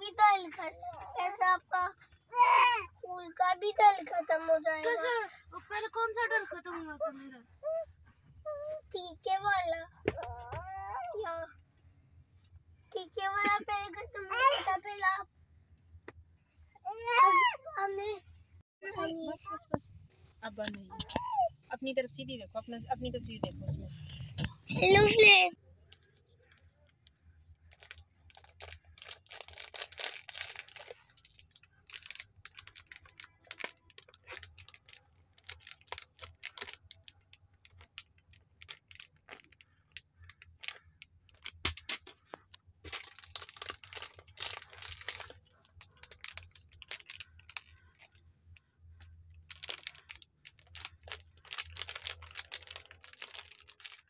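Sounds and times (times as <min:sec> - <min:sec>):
plastic wrapper crinkling: 0:27.6 - 0:48.1, 0:49.4 - 0:54.0.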